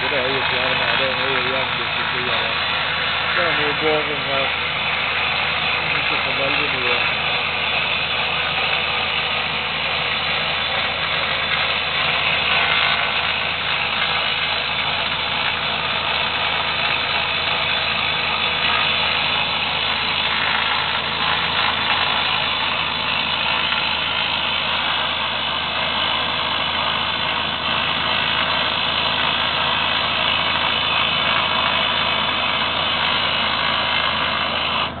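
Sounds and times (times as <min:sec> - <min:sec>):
diesel engines running: 0:00.0 - 0:35.0
rock drill boring: 0:00.0 - 0:35.0.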